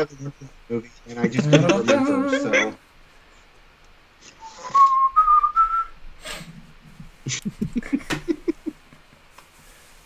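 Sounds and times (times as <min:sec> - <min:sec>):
person whistling: 0:04.4 - 0:05.9
breath noise: 0:06.2 - 0:07.2.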